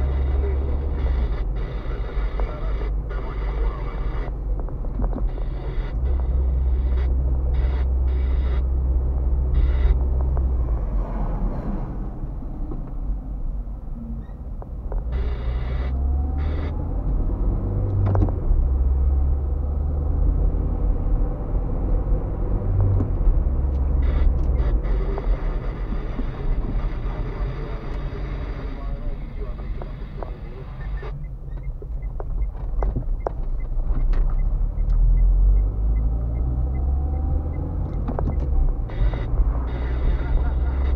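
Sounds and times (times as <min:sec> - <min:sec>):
car engine and road noise: 0:00.0 - 0:40.9.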